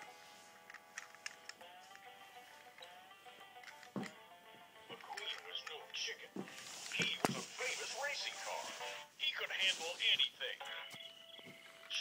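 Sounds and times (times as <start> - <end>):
background music: 0.0 - 12.0
person speaking: 4.9 - 10.9.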